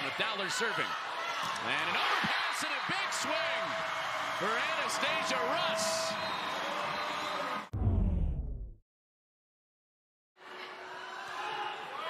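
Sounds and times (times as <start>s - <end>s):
crowd cheering: 0.0s - 7.7s, 10.4s - 12.0s
low whoosh sound effect: 7.7s - 8.8s.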